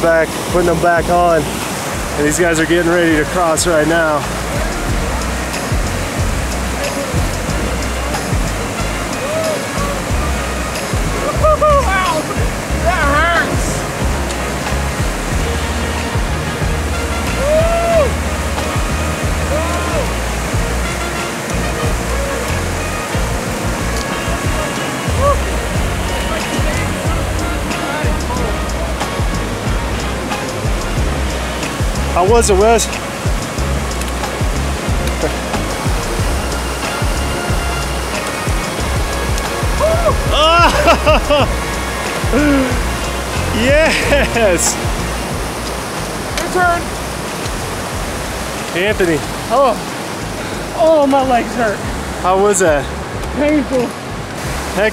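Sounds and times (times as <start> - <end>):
creek rushing over rocks: 0.0 - 54.9.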